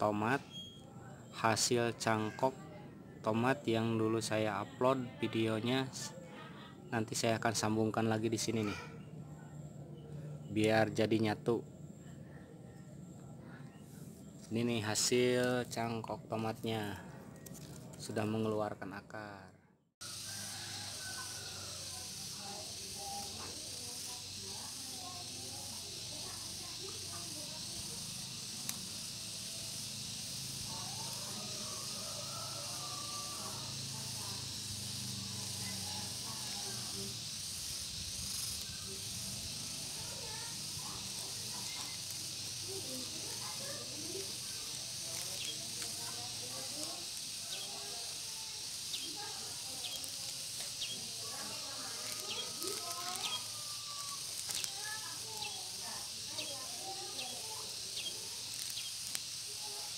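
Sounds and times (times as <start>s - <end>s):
faint distant voices: 0.0s - 59.9s
steady high hiss: 20.0s - 59.9s.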